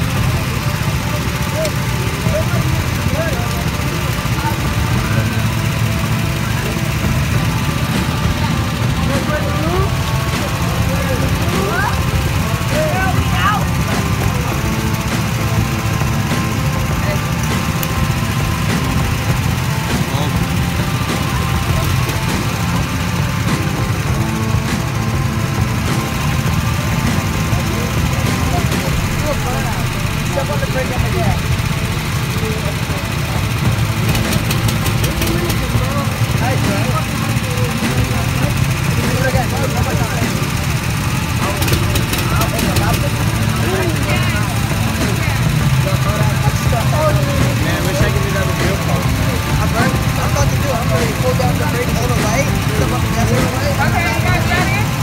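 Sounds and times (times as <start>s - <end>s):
faint voices: 0.0s - 55.0s
go-kart engines idling: 0.0s - 55.0s.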